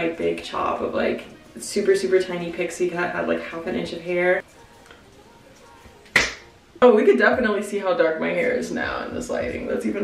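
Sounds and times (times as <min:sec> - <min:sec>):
woman speaking: 0:00.0 - 0:04.4, 0:06.8 - 0:10.0
short sharp snap: 0:06.0 - 0:06.5.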